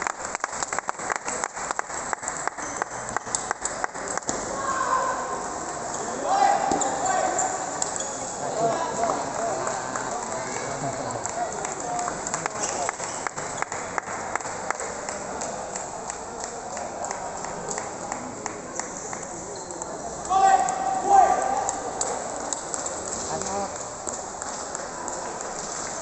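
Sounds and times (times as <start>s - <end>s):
voices chattering: 4.8s - 13.8s.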